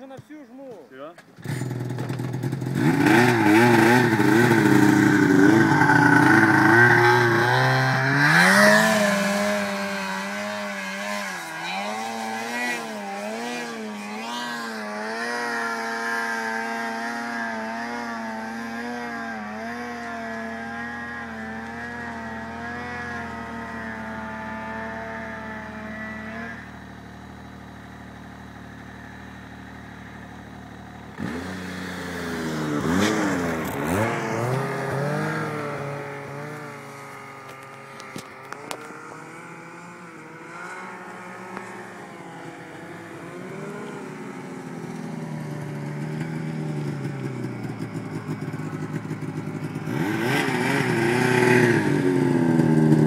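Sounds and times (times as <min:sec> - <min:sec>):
snowmobile engine revving: 0:00.0 - 0:53.0.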